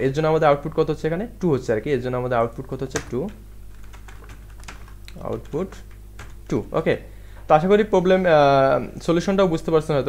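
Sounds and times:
computer keyboard keystrokes: 0:02.9 - 0:06.6.

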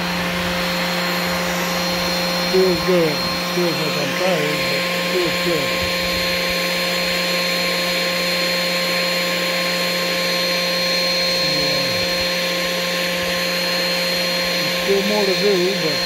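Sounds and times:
high whining tones: 0:00.0 - 0:16.0
machine whirring and humming: 0:00.0 - 0:16.0.

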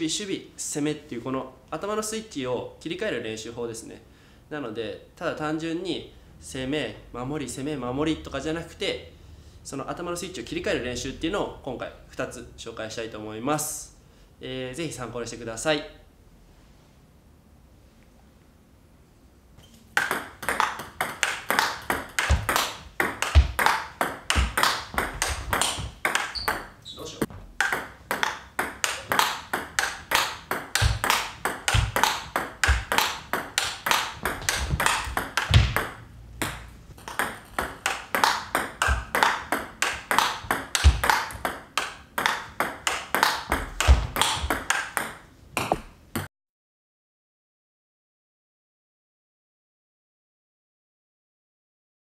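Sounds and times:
table tennis ball clicking: 0:19.9 - 0:26.7, 0:27.6 - 0:45.9.

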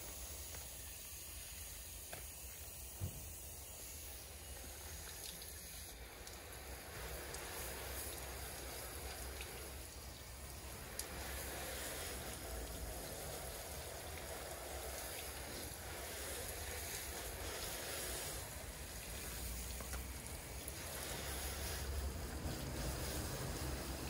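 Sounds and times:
hose nozzle spraying water: 0:00.0 - 0:24.0.

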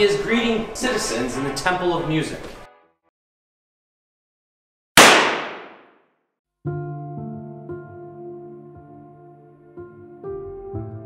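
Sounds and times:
gunshot with echo: 0:05.0 - 0:05.9
music with held chords: 0:06.7 - 0:11.0.

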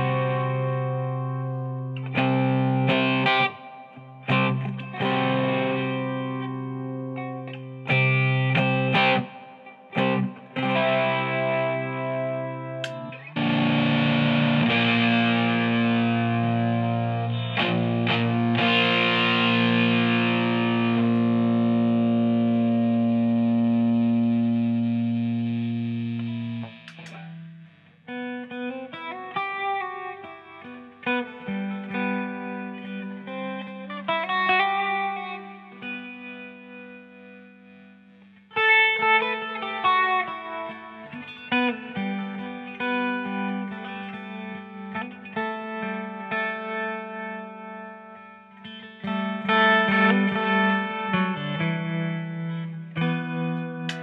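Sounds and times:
electric mandolin strummed chords: 0:00.0 - 0:37.3.

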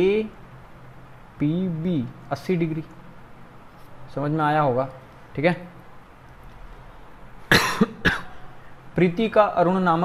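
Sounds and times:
man coughing: 0:07.5 - 0:08.5.

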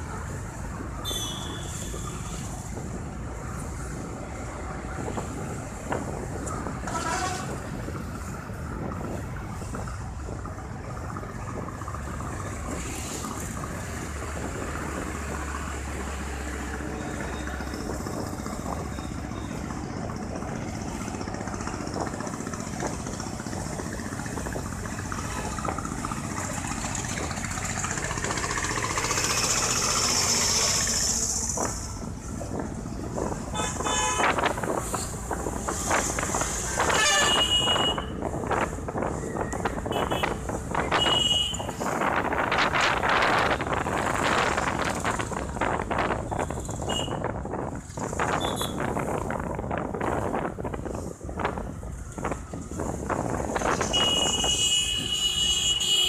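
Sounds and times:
wind noise on microphone: 0:00.0 - 0:27.6, 0:29.2 - 0:55.8
city traffic: 0:00.0 - 0:56.0.

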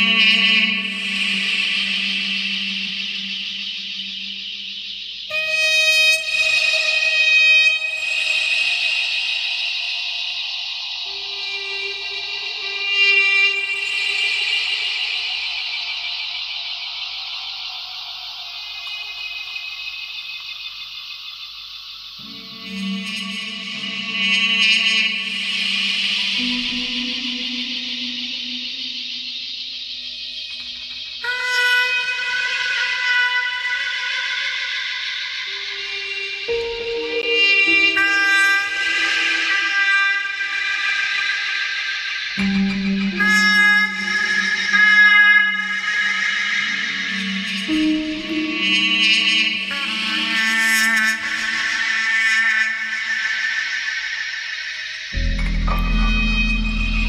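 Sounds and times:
trumpet high note: 0:05.3 - 0:10.2, 0:22.2 - 0:28.8, 0:31.2 - 0:54.5, 0:55.1 - 0:57.0
electronic sounds: 0:55.1 - 0:57.0.

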